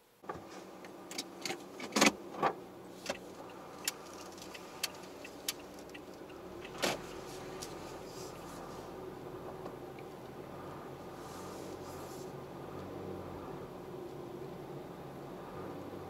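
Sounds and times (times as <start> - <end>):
car running hum: 0.0 - 16.0.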